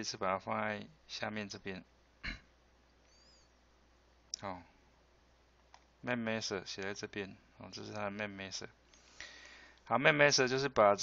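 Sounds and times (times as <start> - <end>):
computer mouse click: 5.6 - 5.9.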